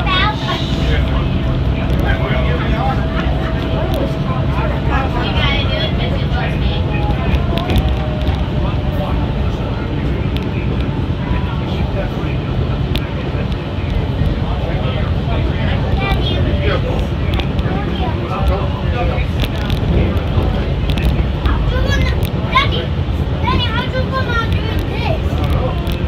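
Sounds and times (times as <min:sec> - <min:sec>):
monorail cabin rumble: 0:00.0 - 0:26.0
passengers chattering: 0:00.0 - 0:26.0.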